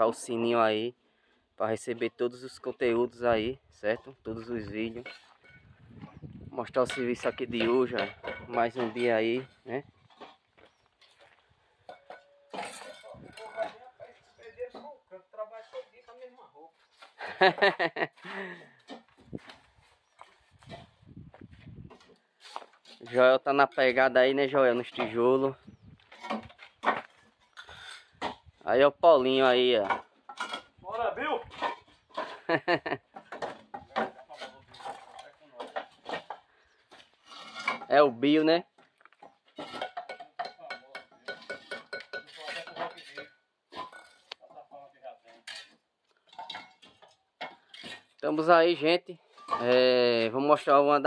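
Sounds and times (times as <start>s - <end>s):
bricklaying tools clinking on brick: 6.8s - 10.5s, 11.8s - 15.0s, 26.0s - 28.4s, 29.8s - 30.8s, 31.4s - 36.5s, 37.2s - 37.9s, 39.1s - 44.4s, 45.3s - 48.2s, 49.3s - 50.0s.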